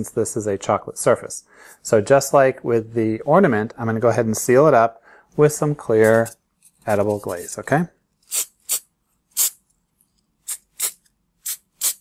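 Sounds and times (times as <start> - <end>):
aerosol can spraying: 8.3 - 9.6, 10.4 - 12.0.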